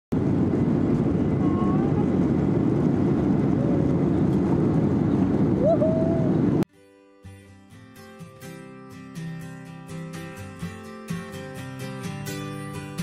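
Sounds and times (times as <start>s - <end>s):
jet engines roaring in cabin: 0.1s - 6.6s.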